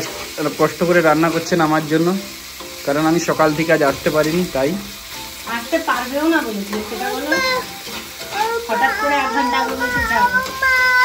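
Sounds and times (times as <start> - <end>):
food sizzling in a frying pan: 0.0 - 11.0
spatula stirring in pan: 0.0 - 11.0.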